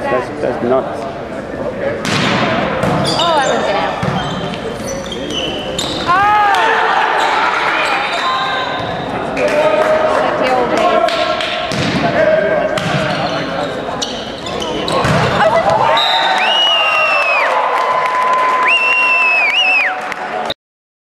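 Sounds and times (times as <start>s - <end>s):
players' voices echoing: 0.0s - 16.0s
sneakers squeaking on hardwood: 2.8s - 6.2s, 7.1s - 9.2s, 12.8s - 15.5s.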